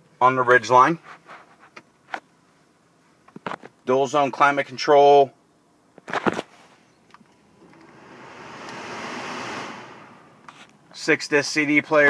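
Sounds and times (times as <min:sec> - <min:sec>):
blower fan rushing air: 0:07.2 - 0:10.9.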